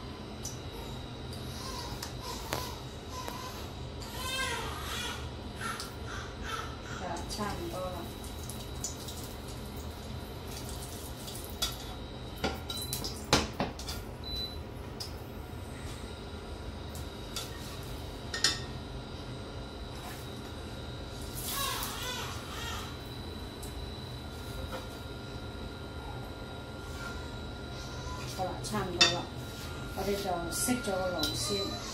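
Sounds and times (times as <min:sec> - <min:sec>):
steady low hum: 0:00.0 - 0:31.9.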